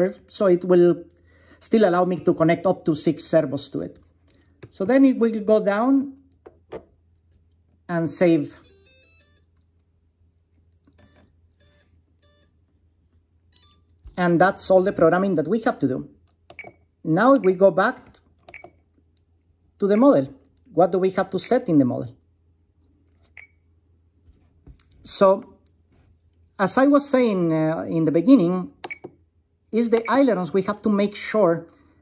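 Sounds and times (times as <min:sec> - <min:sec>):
motor controller beeping: 0:08.6 - 0:09.4, 0:10.9 - 0:12.5.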